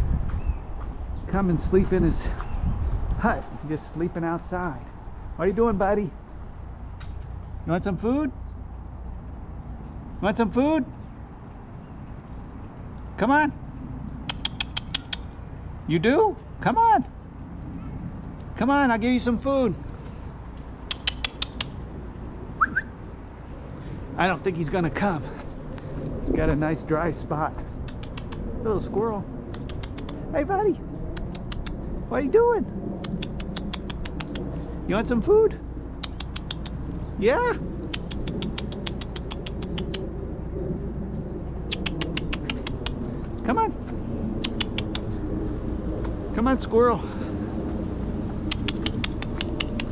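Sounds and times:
rapid sharp clicks: 14.1 - 15.3, 20.8 - 21.8, 33.0 - 34.7, 37.8 - 40.1, 41.7 - 43.0, 48.4 - 49.9.

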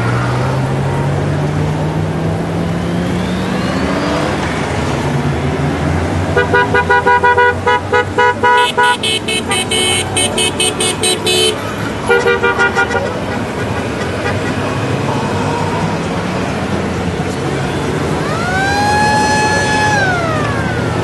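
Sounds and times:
motorcycle engines rumbling: 0.0 - 21.0
shrill high horn beeping: 6.4 - 14.6
motorcycle horns beeping: 6.4 - 14.7.

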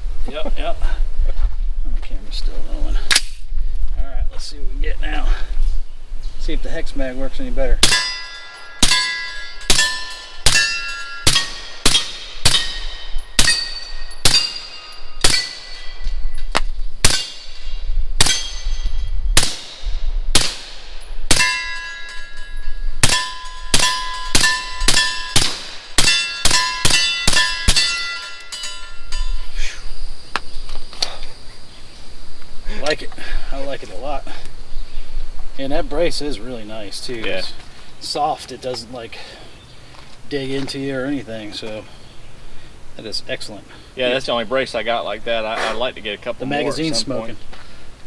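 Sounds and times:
steel target clanging: 7.8 - 16.4, 17.1 - 19.8, 20.6 - 29.5
suppressed rifle shots: 19.4 - 21.5.

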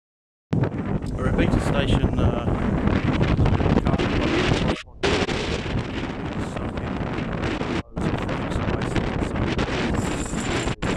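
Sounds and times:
wind buffeting microphone: 0.6 - 10.9.

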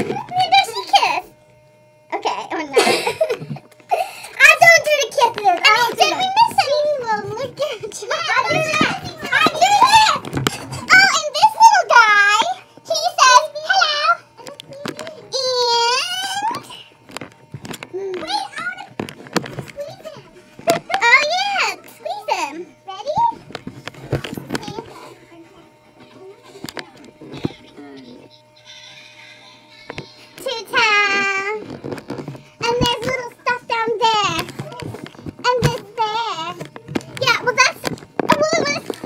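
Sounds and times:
children chattering: 4.3 - 17.0, 17.8 - 31.6.

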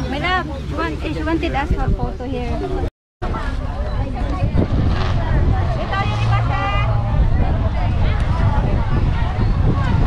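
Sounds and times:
people talking: 0.0 - 10.0
continuous low rumble: 0.1 - 10.0.

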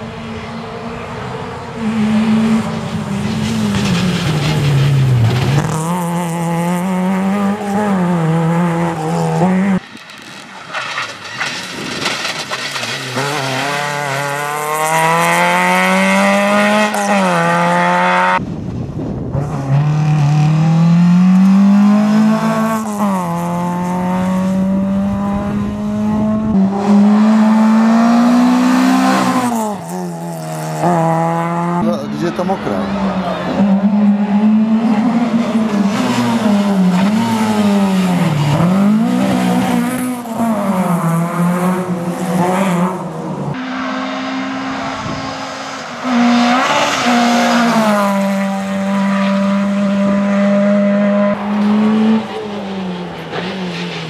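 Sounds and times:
rally car engine revving: 1.6 - 18.5, 19.2 - 54.0.

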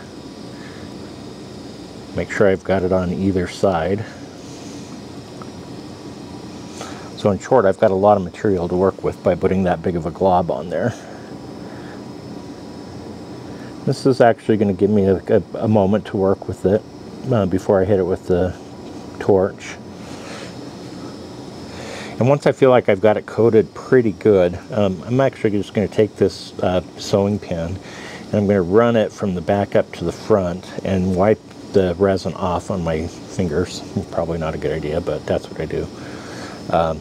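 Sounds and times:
room noise hiss: 0.0 - 37.0.

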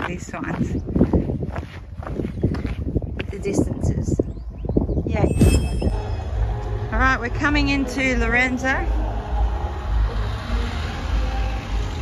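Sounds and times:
footsteps scuffing on path: 0.0 - 3.9
wind rumble on microphone: 0.0 - 12.0.

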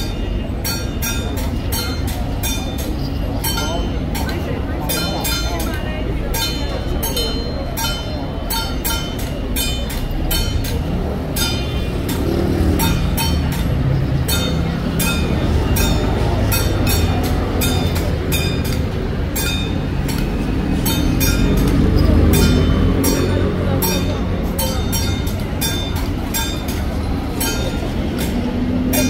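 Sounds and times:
metal percussion clanging: 0.0 - 29.0.

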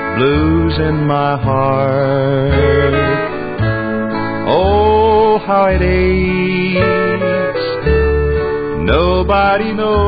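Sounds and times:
country band playing: 0.0 - 10.0
sliding guitar notes: 0.0 - 10.0.

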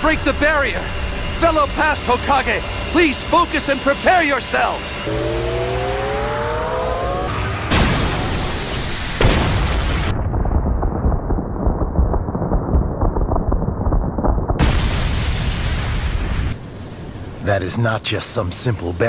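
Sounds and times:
rising whine: 0.0 - 9.1
explosion blast and rumble: 5.3 - 17.2.

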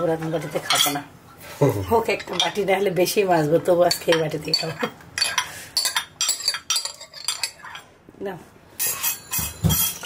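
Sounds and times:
metal ladle clinking on ceramic bowls: 3.8 - 7.8, 8.8 - 10.0.

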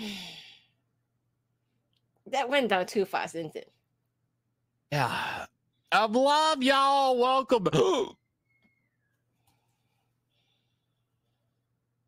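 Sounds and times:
person sighing: 0.0 - 0.7, 4.9 - 5.5.

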